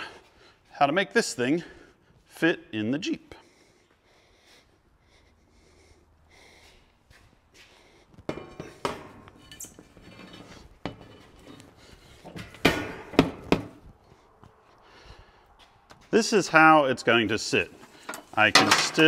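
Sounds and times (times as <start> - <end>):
sharp metal knocks: 12.4 - 13.8
metal cargo basket clanking: 17.6 - 19.0.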